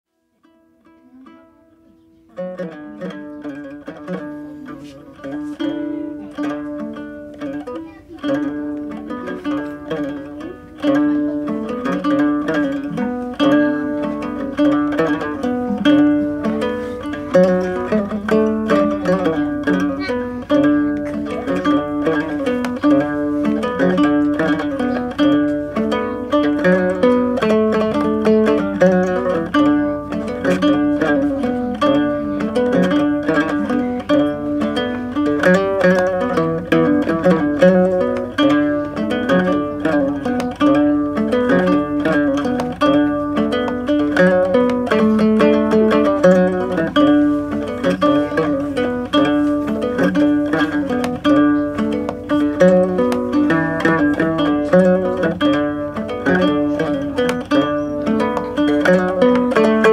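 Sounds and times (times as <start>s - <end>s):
acoustic guitar: 0.1s - 59.9s
plucked string instrument: 0.1s - 59.9s.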